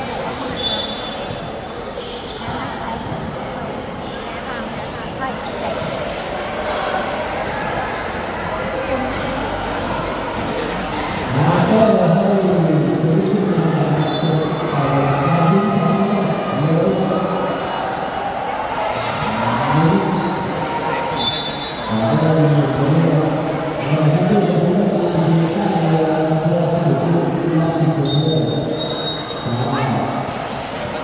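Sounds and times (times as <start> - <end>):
voices talking: 0.0 - 31.0.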